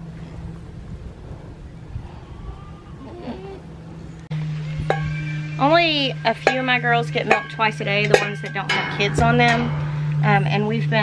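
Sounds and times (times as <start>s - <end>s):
wind buffeting microphone: 0.0s - 4.1s, 7.9s - 11.0s
faint animal-like call: 2.0s - 3.7s.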